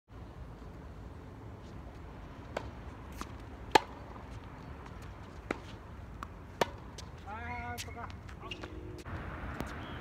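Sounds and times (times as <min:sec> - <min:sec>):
tennis ball hitting racket strings: 0:02.4 - 0:07.2.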